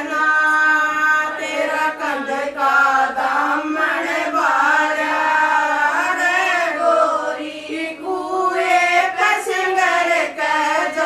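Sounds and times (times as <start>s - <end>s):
women singing unaccompanied folk song: 0.0s - 11.0s.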